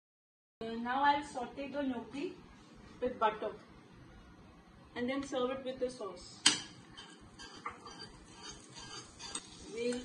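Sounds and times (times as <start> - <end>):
spoon scraping pan: 6.7 - 10.0
butter sizzling in frying pan: 6.9 - 10.0.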